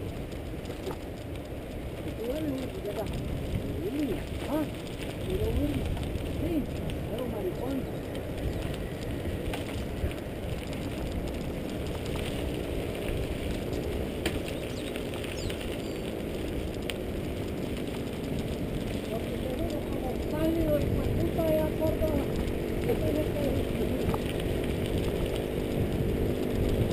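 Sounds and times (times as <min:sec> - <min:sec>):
sharp ticks from bike: 0:00.0 - 0:26.9
tyres rumbling over gravel: 0:00.0 - 0:26.9
wind rushing over microphone: 0:00.0 - 0:26.9.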